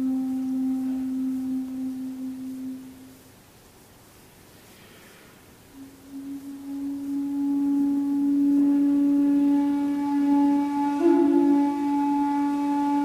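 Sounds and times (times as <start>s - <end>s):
bamboo flute long low note: 0.0s - 3.2s, 5.7s - 13.0s.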